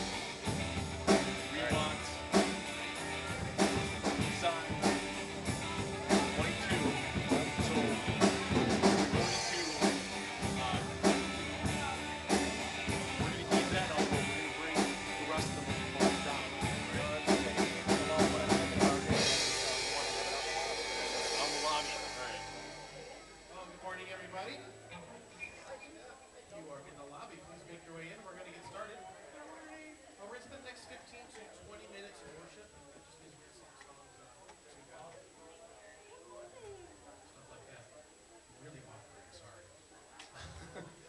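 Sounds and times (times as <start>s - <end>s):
live band music: 0.0s - 24.3s.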